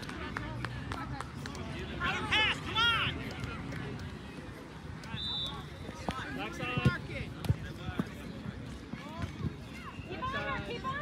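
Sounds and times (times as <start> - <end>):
high whistle-like tone: 5.1 - 5.7.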